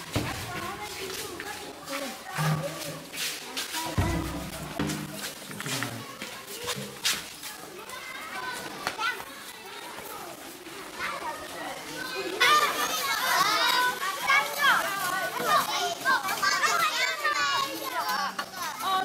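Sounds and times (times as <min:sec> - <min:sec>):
children shouting and squealing: 0:00.0 - 0:19.0.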